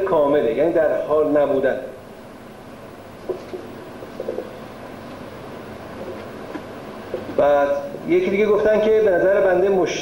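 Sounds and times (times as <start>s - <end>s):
background hiss: 0.0s - 10.0s
low room hum: 0.0s - 10.0s.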